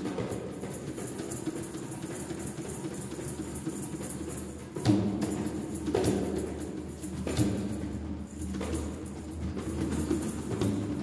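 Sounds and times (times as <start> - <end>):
quick rattling percussion: 0.0 - 11.0.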